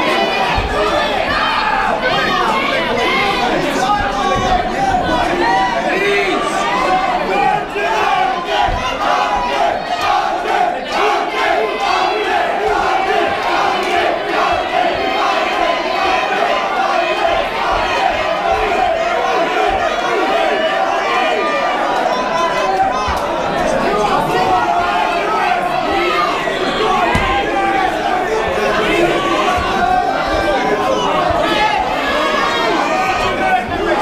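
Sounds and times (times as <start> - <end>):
crowd shouting and cheering: 0.0 - 34.0.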